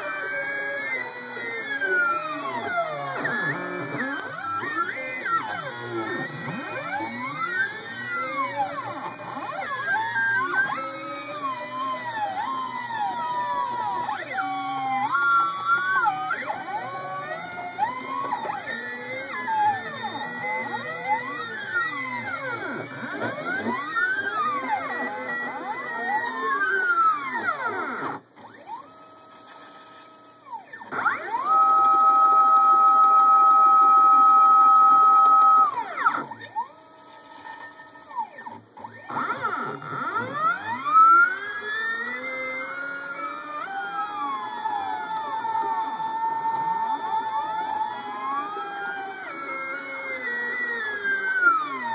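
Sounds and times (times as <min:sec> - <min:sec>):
stepper motors whining: 0:00.0 - 0:51.9.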